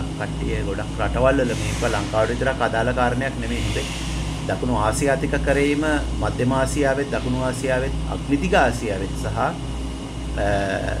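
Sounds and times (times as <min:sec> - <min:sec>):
man talking: 0:00.0 - 0:03.9, 0:04.5 - 0:09.6, 0:10.4 - 0:11.0
steady low hum: 0:00.0 - 0:11.0.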